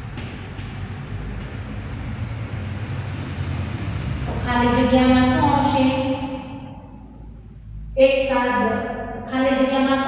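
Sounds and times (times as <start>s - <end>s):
low hum: 0.0s - 10.0s
woman reading aloud: 4.4s - 6.4s, 8.0s - 10.0s.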